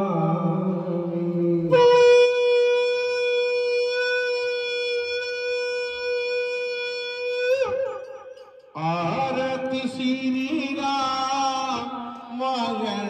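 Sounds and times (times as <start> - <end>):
conch shell blown: 1.7 - 10.0.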